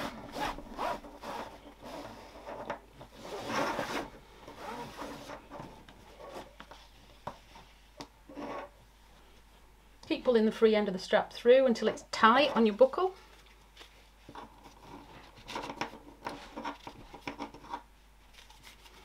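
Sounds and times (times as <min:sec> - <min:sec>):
webbing strap pulled through buckle: 0:00.0 - 0:02.5, 0:03.2 - 0:06.6.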